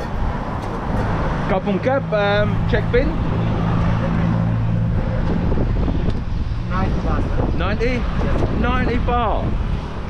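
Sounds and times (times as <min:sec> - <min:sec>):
street noise: 0:00.0 - 0:10.0
vehicle engine humming: 0:00.0 - 0:10.0.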